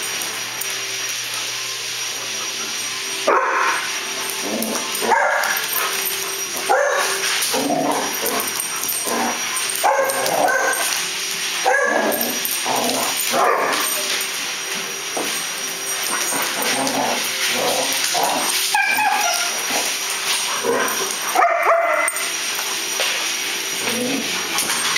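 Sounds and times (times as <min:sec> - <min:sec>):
dogs barking and yipping: 0:03.0 - 0:24.9.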